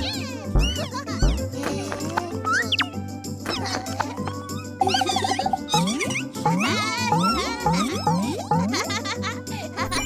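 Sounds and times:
upbeat cartoon music: 0.0s - 10.0s.

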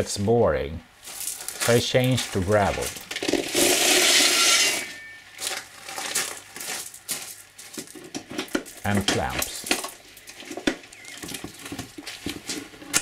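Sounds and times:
gravel pouring onto plastic: 1.0s - 4.3s.

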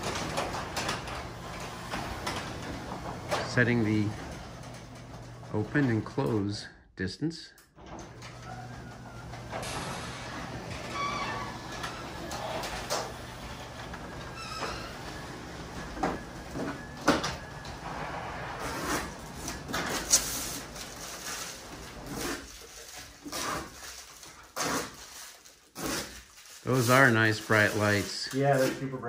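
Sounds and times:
garage door clicks and rattles: 0.0s - 6.2s, 7.7s - 22.1s
garage door opener motor hum: 0.0s - 6.4s, 7.7s - 23.6s.

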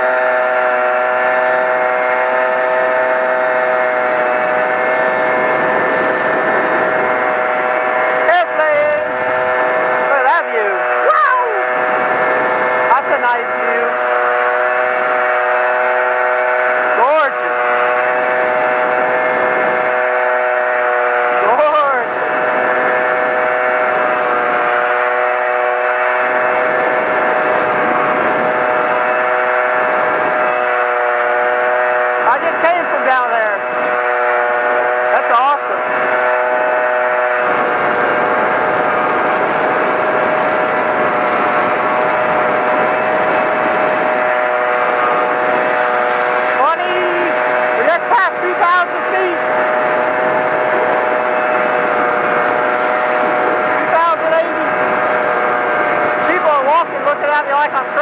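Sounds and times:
moped engine running: 0.0s - 58.0s
steady noisy rush: 0.0s - 58.0s.

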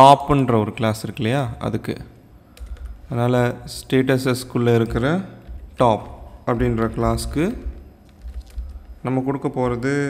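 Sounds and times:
person speaking: 0.0s - 10.0s
keyboard typing: 2.5s - 10.0s.

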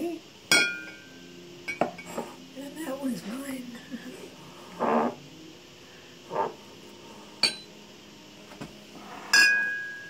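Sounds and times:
ceramic mug clinking: 0.5s - 1.0s, 1.7s - 2.2s, 7.4s - 7.7s, 9.3s - 10.0s.

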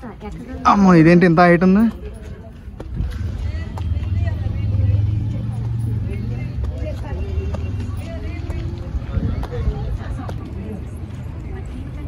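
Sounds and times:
people talking faintly: 1.8s - 12.0s.

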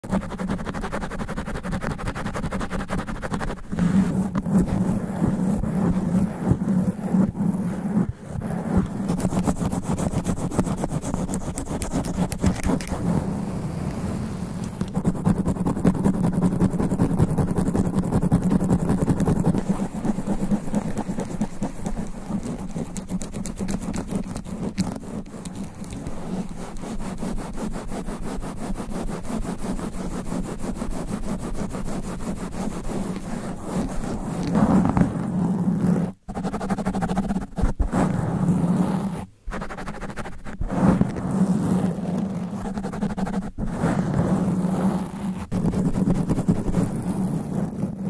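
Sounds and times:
fingernails scratching microphone foam: 0.0s - 48.0s.

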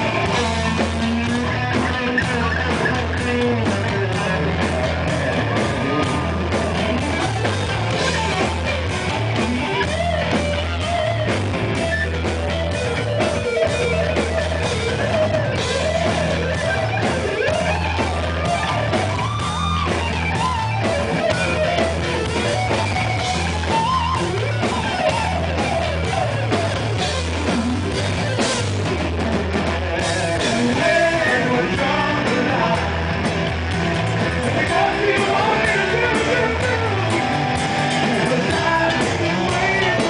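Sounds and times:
bass guitar: 0.0s - 40.0s
drum kit: 0.0s - 40.0s
electric guitar lead line: 0.0s - 40.0s.

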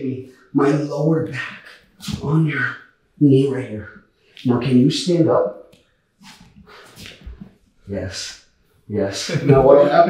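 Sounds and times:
strained breathing: 5.8s - 7.5s.

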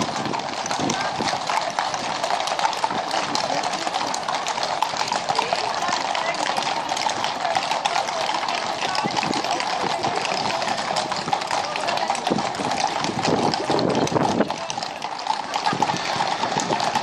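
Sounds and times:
horse hooves clip-clopping on road: 0.0s - 17.0s.

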